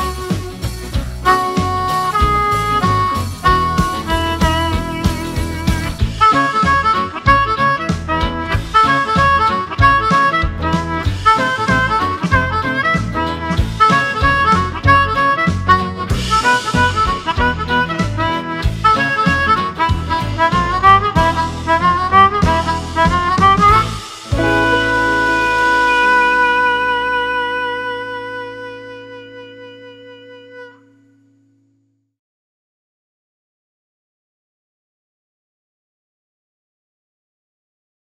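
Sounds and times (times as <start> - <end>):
swing backing track: 0.0 - 29.8
amplified harmonica melody: 0.0 - 31.3.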